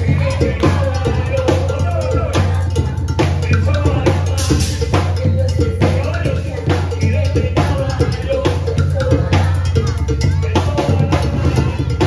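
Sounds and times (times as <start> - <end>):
bell pattern: 0.0 - 12.0
deep bass drums: 0.0 - 12.0.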